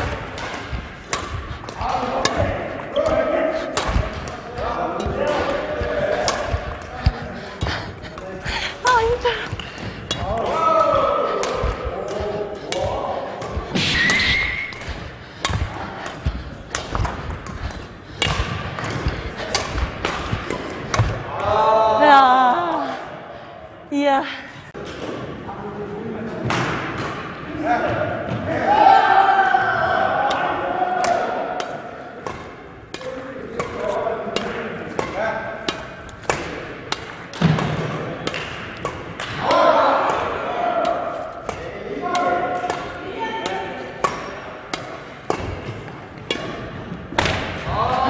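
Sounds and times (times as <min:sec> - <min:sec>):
badminton rackets hitting shuttlecocks: 0:00.0 - 0:21.5, 0:30.1 - 0:47.7.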